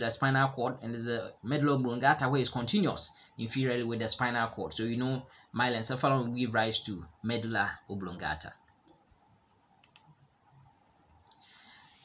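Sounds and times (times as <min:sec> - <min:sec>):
computer mouse click: 0:09.8 - 0:10.2.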